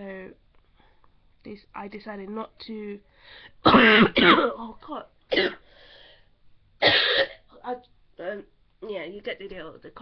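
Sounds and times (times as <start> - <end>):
woman coughing: 3.6 - 4.7, 5.3 - 5.6, 6.8 - 7.5.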